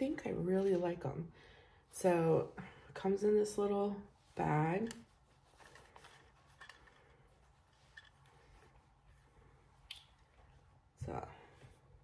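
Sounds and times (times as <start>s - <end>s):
faint cloth rustles: 1.9s - 12.0s.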